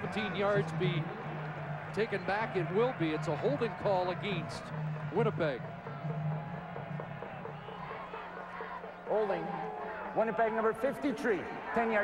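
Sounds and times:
music over public-address system: 0:00.0 - 0:12.0.

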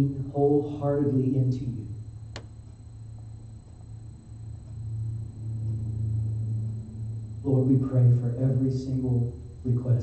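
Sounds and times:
low sustained keyboard note: 0:00.0 - 0:10.0
sharp click: 0:02.3 - 0:02.8.

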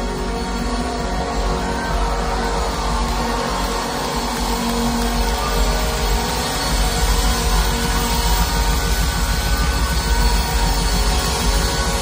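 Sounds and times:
heavy pulsing bass: 0:00.0 - 0:12.0.

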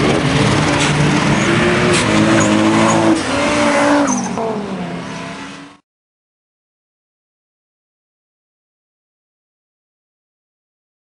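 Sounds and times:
car engines revving: 0:00.0 - 0:05.8.

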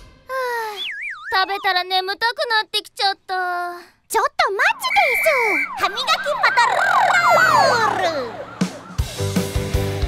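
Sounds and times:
cartoon police siren effect: 0:00.6 - 0:02.0, 0:04.6 - 0:09.4
song music: 0:06.1 - 0:10.0.

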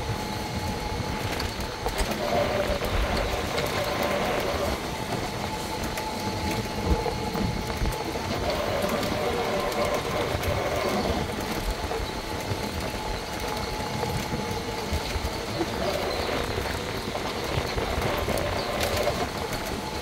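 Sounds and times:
faint electric motor whine: 0:00.0 - 0:20.0
tyres rumbling on pavement: 0:00.0 - 0:20.0
wind: 0:00.0 - 0:20.0.

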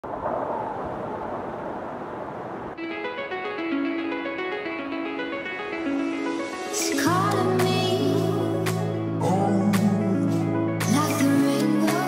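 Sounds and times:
steady rushing noise: 0:00.0 - 0:03.5.

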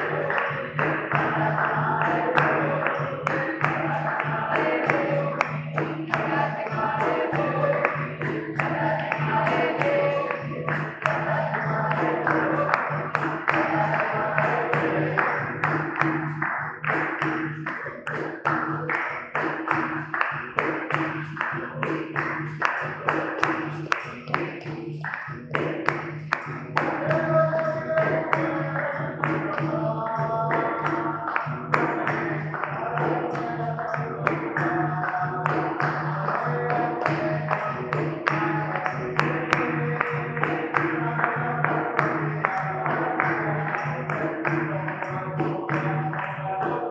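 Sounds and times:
call-and-response singing: 0:00.0 - 0:46.9
hand drum rhythm: 0:00.0 - 0:46.9
hand-clapping: 0:00.0 - 0:46.9.

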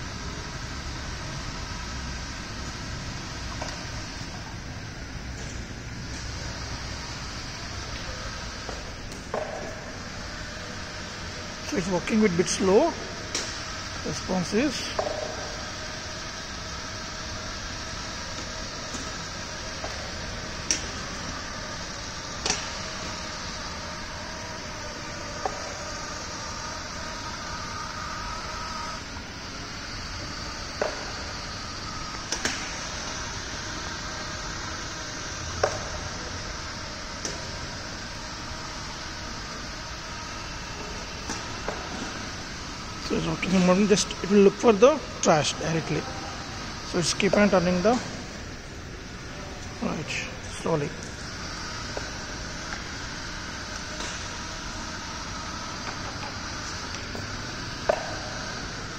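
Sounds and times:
electric motors whining: 0:00.0 - 0:58.9.

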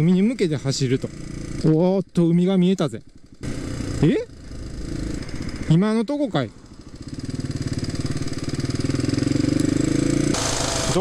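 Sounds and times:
motorcycle engine running: 0:00.0 - 0:11.0
road noise: 0:00.0 - 0:11.0.

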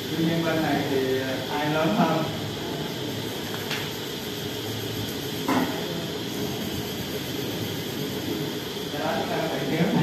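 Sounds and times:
room hum with hiss: 0:00.0 - 0:10.0.

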